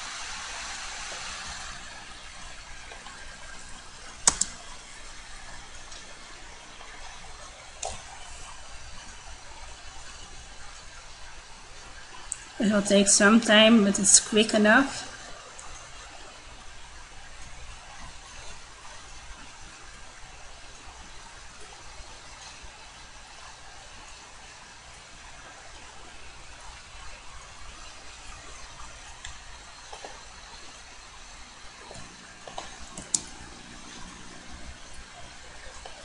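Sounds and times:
faint hiss: 0:00.0 - 0:36.0
low hum: 0:25.4 - 0:36.0.

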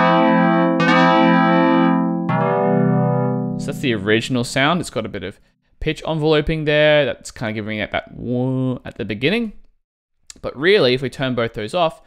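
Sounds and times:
synth pad playing sustained chords: 0:00.0 - 0:04.1.

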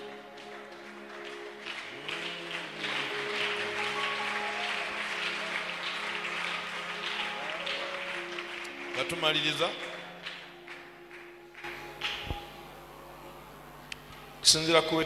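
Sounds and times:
congregation clapping: 0:00.0 - 0:15.0.

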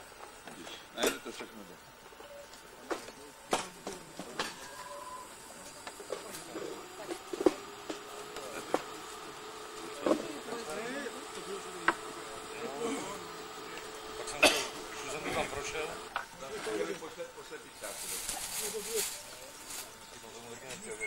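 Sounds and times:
faint background chatter: 0:00.4 - 0:21.0.

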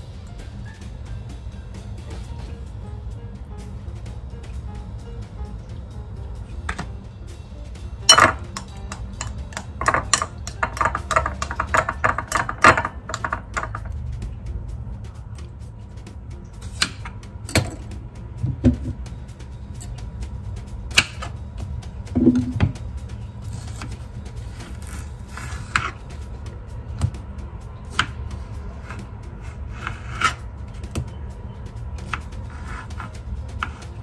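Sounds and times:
background music: 0:00.0 - 0:34.0.

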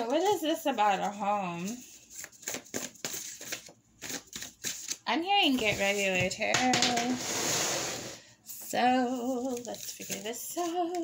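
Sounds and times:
cards being shuffled: 0:01.0 - 0:05.0.

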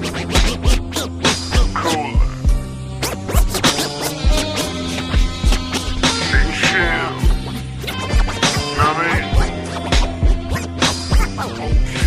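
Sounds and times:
slowed hip-hop beat: 0:00.0 - 0:12.0
turntable scratching: 0:00.0 - 0:12.0.

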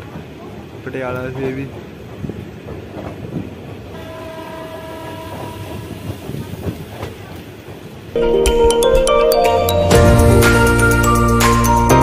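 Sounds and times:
train rail rumble: 0:00.0 - 0:12.0
train horn: 0:03.9 - 0:06.1.

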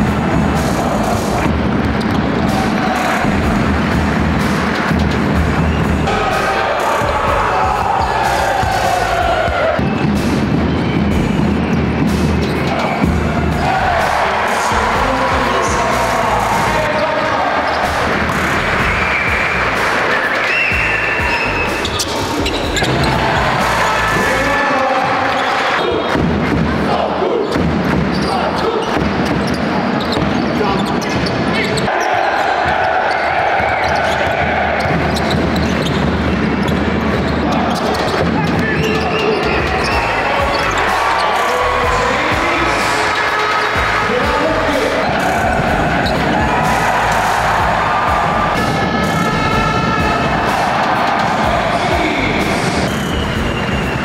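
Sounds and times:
music: 0:00.0 - 0:54.0
basketball bouncing on court: 0:27.4 - 0:31.5, 0:32.3 - 0:39.6
voices: 0:37.2 - 0:54.0.

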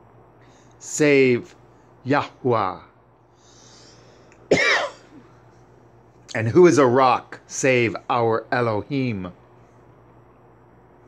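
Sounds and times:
man coughing: 0:04.5 - 0:05.4.

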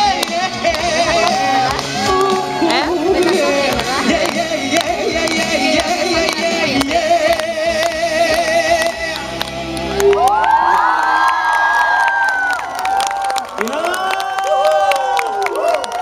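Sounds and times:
crowd screaming and cheering: 0:00.0 - 0:04.2, 0:08.4 - 0:16.0.

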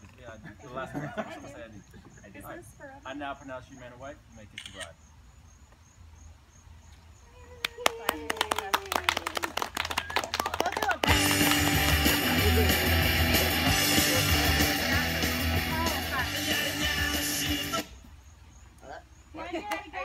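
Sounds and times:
voices: 0:00.0 - 0:05.0, 0:07.2 - 0:18.1, 0:18.8 - 0:20.0
small group clapping: 0:07.6 - 0:15.2
loud recorded music: 0:11.1 - 0:17.9.

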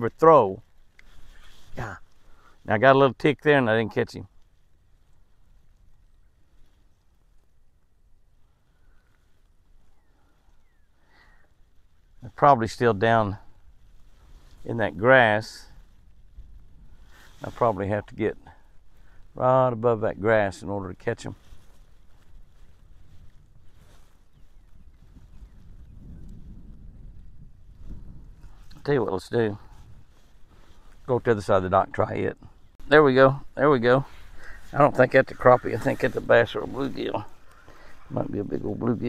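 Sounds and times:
wind rumble on microphone: 0:11.8 - 0:39.0.

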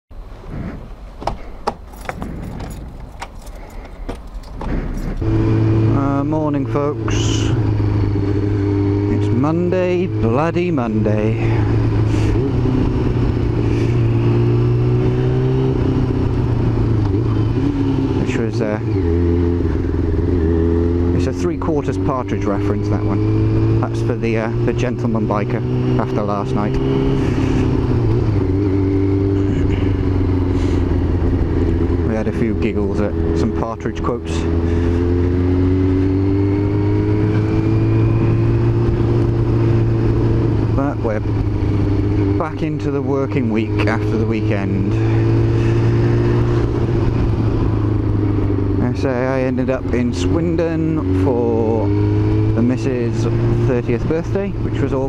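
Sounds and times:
motorcycle engine running: 0:01.7 - 0:55.0
keys clicking and rattling: 0:01.8 - 0:05.2.

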